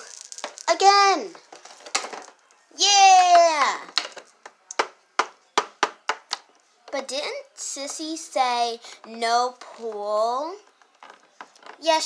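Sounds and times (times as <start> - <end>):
plastic dolls tapping plastic: 3.3 - 7.0, 9.8 - 11.9.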